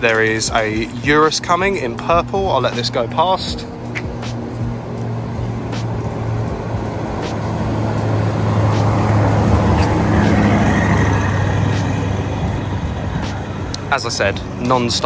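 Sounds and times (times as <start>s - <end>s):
car driving past slowly: 3.4s - 15.0s.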